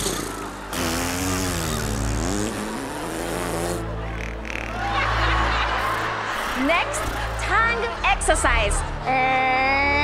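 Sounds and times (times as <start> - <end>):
low background music: 0.0 - 10.0
audience laughing and cheering: 4.0 - 10.0.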